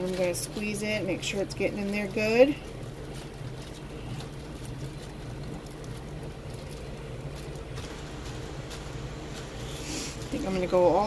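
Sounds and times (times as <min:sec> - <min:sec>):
soft handling noises: 0:00.0 - 0:11.0
steady low hum: 0:00.0 - 0:11.0.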